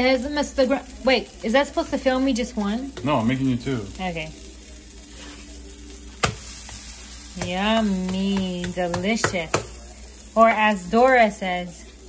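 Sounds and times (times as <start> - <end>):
food sizzling on griddle: 0.0 - 12.0.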